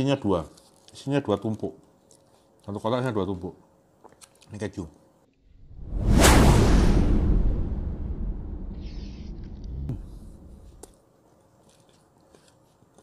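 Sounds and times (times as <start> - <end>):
loud whoosh with deep rumble: 5.6 - 10.8.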